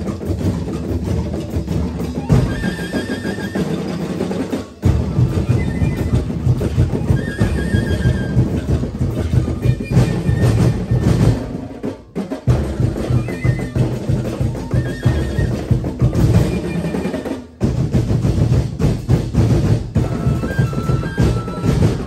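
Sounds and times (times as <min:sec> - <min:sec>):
drum and percussion ensemble: 0:00.0 - 0:22.0.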